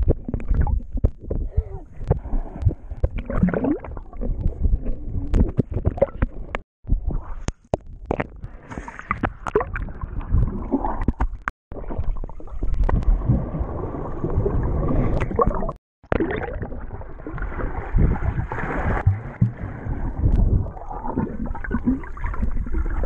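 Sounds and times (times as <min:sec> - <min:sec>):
muffled water sloshing: 0:00.0 - 0:23.0.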